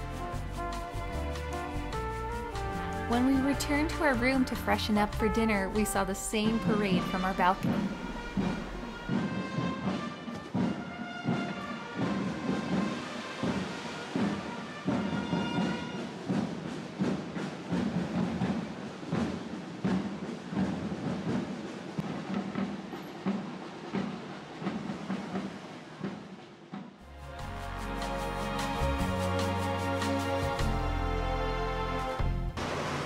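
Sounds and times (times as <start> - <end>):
held brass-like notes: 0.0 - 16.3, 27.0 - 32.6
parade drums beating: 0.0 - 30.9.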